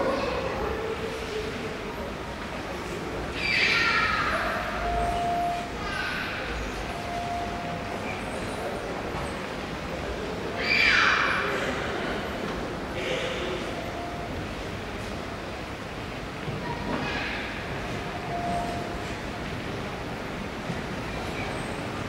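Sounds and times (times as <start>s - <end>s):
train approaching on tracks: 0.0s - 22.0s.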